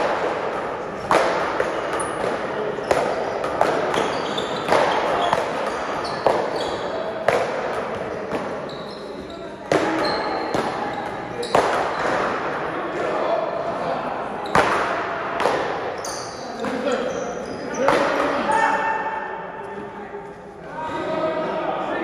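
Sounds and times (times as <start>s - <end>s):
ball struck by paddles: 0.0s - 8.7s, 9.7s - 12.6s, 14.5s - 16.0s, 17.8s - 18.5s.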